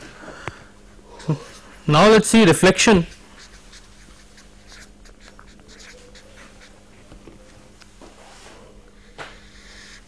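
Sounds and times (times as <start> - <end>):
low steady hum: 0.0 - 10.0
pen scratching writing strokes: 3.4 - 6.8.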